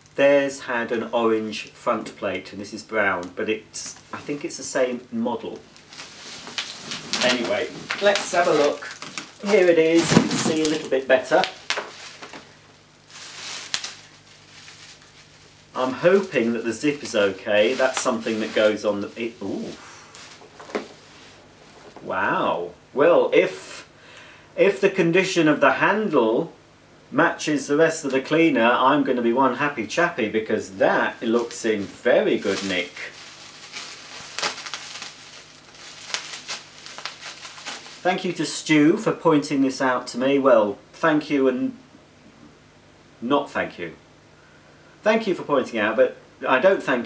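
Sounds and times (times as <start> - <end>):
bubble wrap rustling and crackling: 3.1 - 22.2, 30.6 - 38.6.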